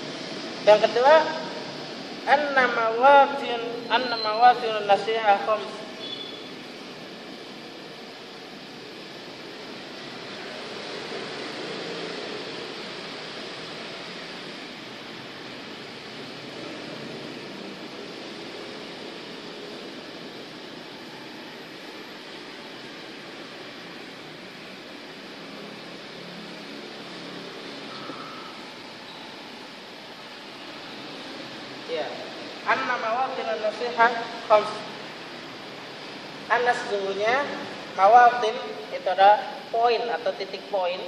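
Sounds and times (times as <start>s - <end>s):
hiss-like room tone: 0.0s - 41.0s.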